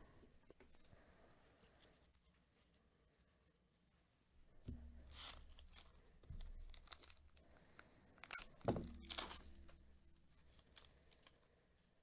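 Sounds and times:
plastic wrapper tearing and crinkling: 5.1s - 11.5s.

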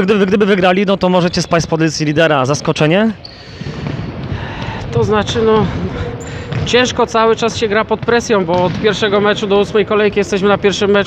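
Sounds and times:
footsteps on indoor court: 3.5s - 9.4s
ball bouncing on court: 3.6s - 9.7s.

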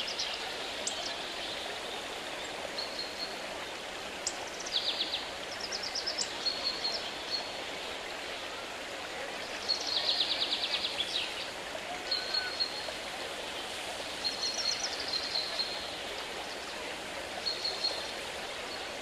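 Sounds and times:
rushing water: 0.0s - 19.0s.

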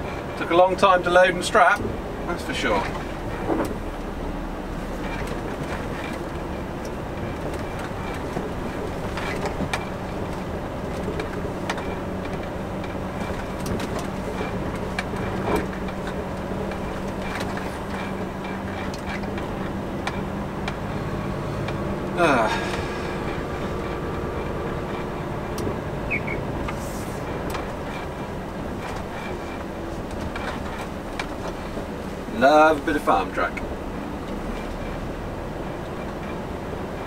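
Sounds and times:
diesel truck engine running: 0.0s - 37.0s
knocks and rattles in cab: 0.0s - 37.0s.

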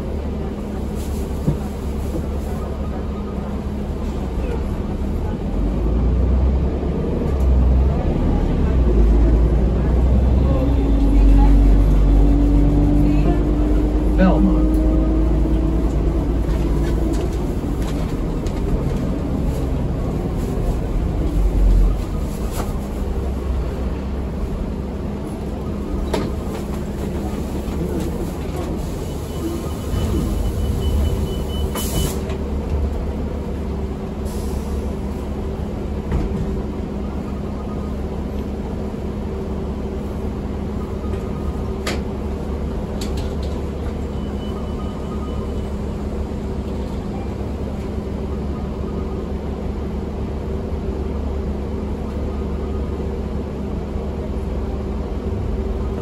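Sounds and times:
bus engine and road rumble: 0.0s - 56.0s
engine whine: 3.6s - 56.0s.

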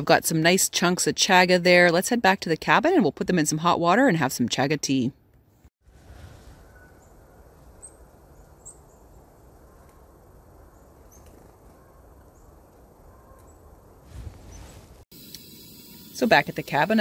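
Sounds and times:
low rush: 5.8s - 8.2s, 13.9s - 15.0s.

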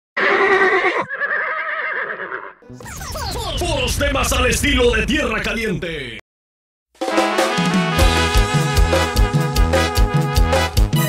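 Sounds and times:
horse whinnying: 0.2s - 2.6s.

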